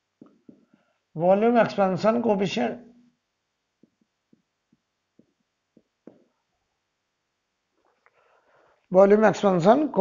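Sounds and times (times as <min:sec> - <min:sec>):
marker tapping on whiteboard: 0:00.2 - 0:00.8, 0:03.8 - 0:06.3.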